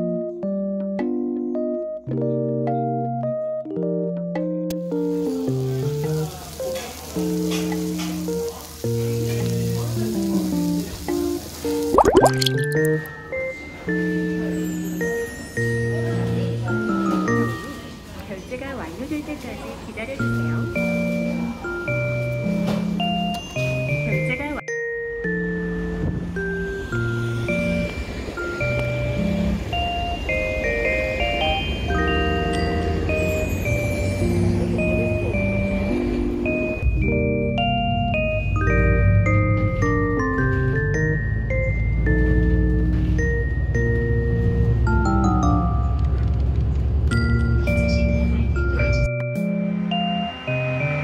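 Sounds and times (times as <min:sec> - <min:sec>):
soft held keyboard music: 0:00.0 - 0:18.5, 0:20.0 - 0:51.0
pork sizzling on a grill plate: 0:04.8 - 0:11.9.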